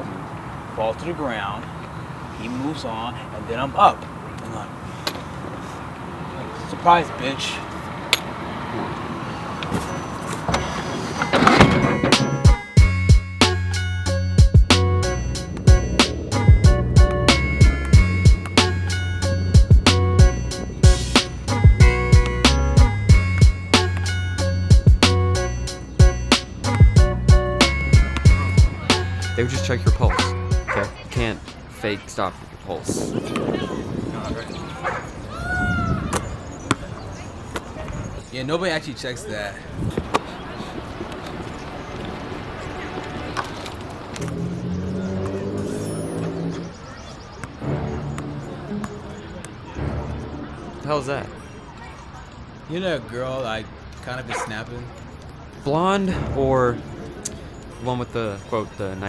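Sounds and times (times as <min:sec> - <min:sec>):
street traffic rumble: 0:00.0 - 0:59.0.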